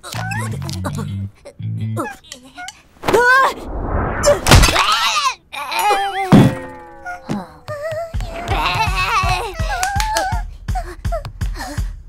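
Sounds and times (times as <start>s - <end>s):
wavering cartoon voice: 0.0s - 2.8s
loud cartoon thunk: 4.4s - 4.8s.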